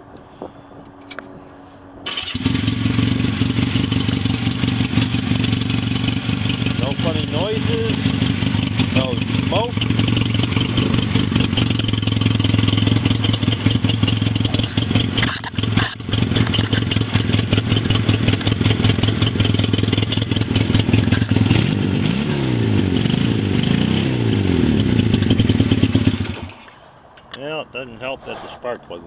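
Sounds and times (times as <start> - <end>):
motorcycle engine running: 0.0 - 26.6.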